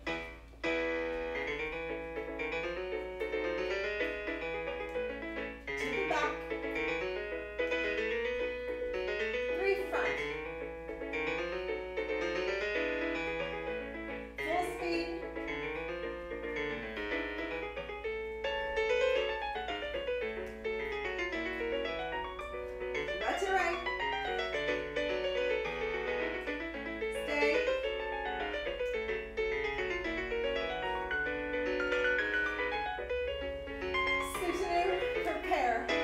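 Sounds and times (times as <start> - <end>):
piano music: 0.0 - 36.0.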